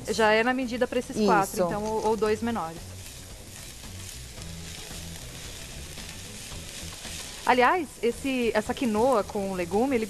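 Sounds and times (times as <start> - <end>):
vegetables sizzling in a pan: 0.0 - 10.0
spatula stirring in a pan: 2.0 - 10.0.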